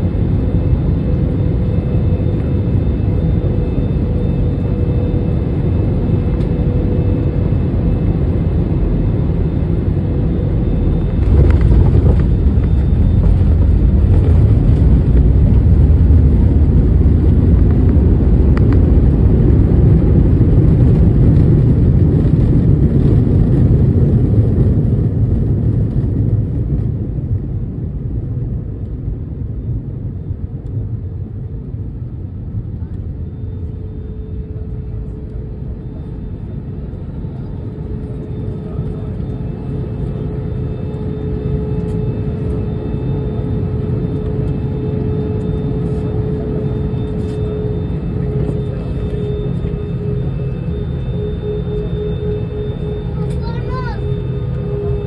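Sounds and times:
jet engine rumble: 0:00.0 - 0:55.0
jet engine whine: 0:00.0 - 0:55.0.

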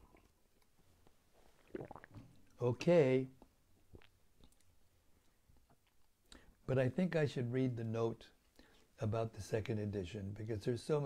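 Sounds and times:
sipping and swallowing drink: 0:01.4 - 0:02.6, 0:03.4 - 0:04.7.

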